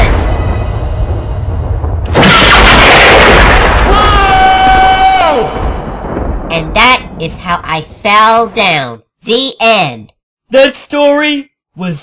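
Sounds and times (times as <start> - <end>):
loud crashing boom: 0.0 - 7.3.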